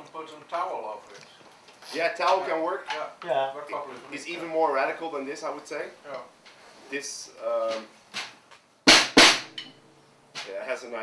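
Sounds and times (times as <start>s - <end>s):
dampened snare drum strokes: 7.6s - 9.7s.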